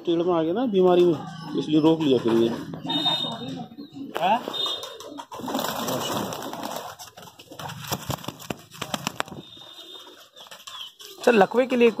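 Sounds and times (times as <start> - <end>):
pigeons cooing: 1.0 - 12.0.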